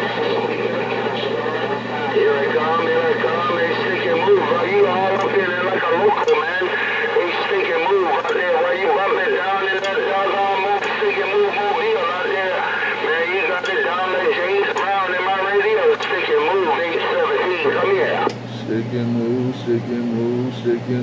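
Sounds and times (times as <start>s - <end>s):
steady hum: 0.0s - 21.0s
voices over cb radio: 0.0s - 21.0s.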